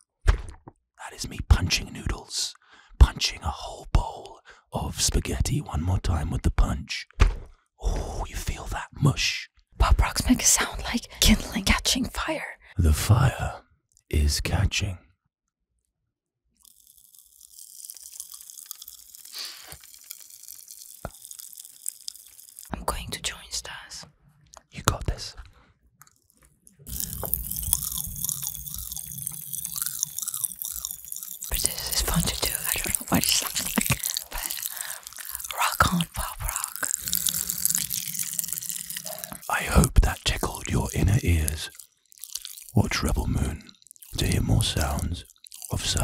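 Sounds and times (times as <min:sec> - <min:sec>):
popping candy crackling in mouth: 0:16.6 - 0:22.8, 0:26.0 - 0:46.0.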